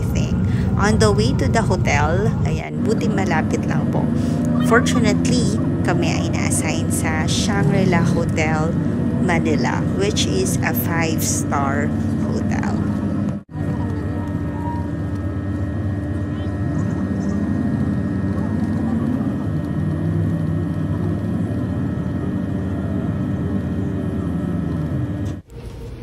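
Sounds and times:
bus engine and road hum: 0.0s - 26.0s.

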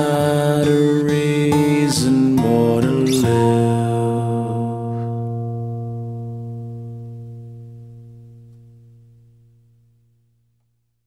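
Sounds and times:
acoustic guitar chord ringing: 0.0s - 10.5s.

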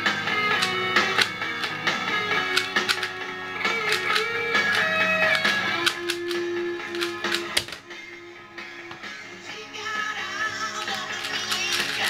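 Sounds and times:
guitar background music: 0.0s - 12.0s
puzzle cube clicking: 0.5s - 1.8s, 2.4s - 3.2s, 3.8s - 7.8s, 10.8s - 12.0s.

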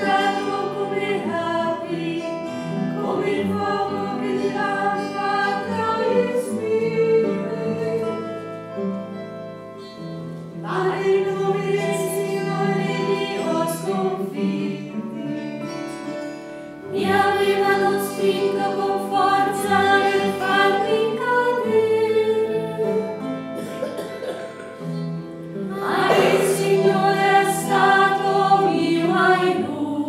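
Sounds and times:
choir of nuns singing: 0.0s - 8.6s, 10.5s - 15.3s, 16.8s - 23.7s, 25.5s - 30.0s.

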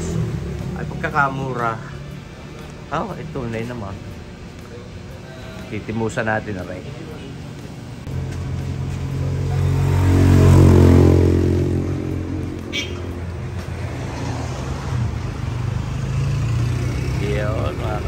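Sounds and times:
vehicle engine passing by: 0.0s - 3.8s, 6.7s - 18.0s.

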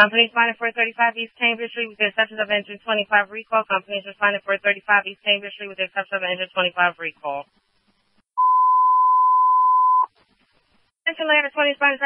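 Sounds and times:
radio alert beep: 8.4s - 10.1s.

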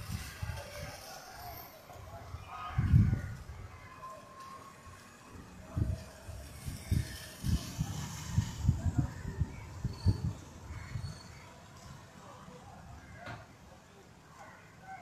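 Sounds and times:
wind gusts buffeting microphone: 0.0s - 1.0s, 2.0s - 3.8s, 5.4s - 11.3s.

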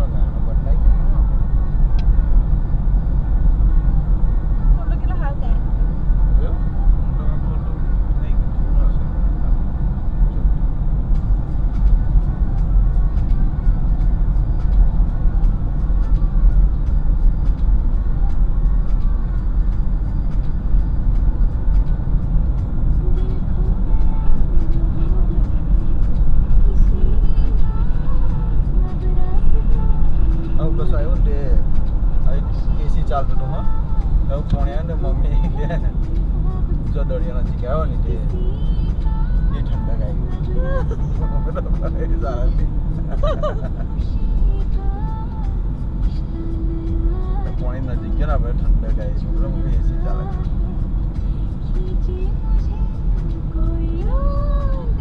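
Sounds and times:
car tyres and engine rumble: 0.0s - 55.0s.

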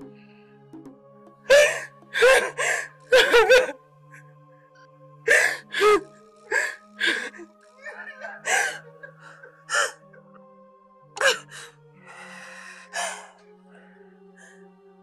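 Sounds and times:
long breathy sound: 0.0s - 0.8s, 1.5s - 3.1s, 5.3s - 10.5s, 11.2s - 14.8s
background music: 0.0s - 15.0s
man crying out gasping: 1.5s - 3.8s, 5.3s - 6.0s, 6.6s - 10.4s.

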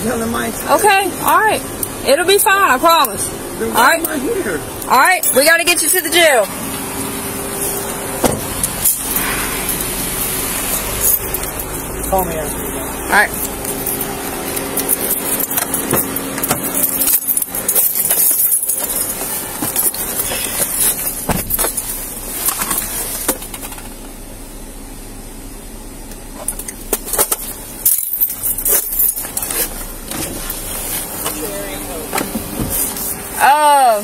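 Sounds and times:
keys jangling: 10.6s - 11.9s, 13.3s - 23.0s, 26.4s - 29.9s.

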